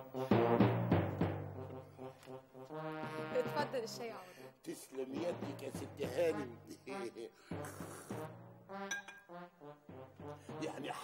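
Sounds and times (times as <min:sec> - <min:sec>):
background music: 0:00.0 - 0:11.0
glass clink: 0:08.9 - 0:09.3.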